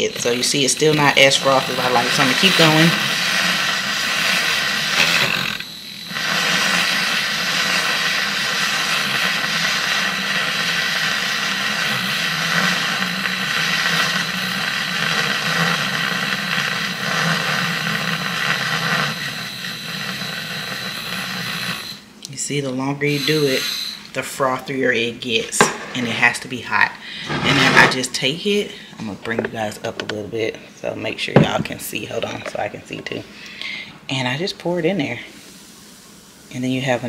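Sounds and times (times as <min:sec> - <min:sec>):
milk frother whirring: 0:00.0 - 0:33.3.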